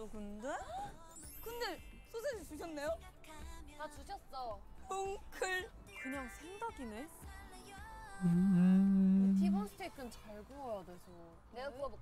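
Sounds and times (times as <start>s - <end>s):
person humming: 8.2s - 9.7s.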